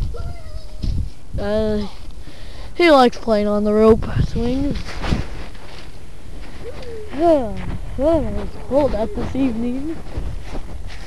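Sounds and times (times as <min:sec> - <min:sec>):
low steady rumbling: 0:00.0 - 0:11.0.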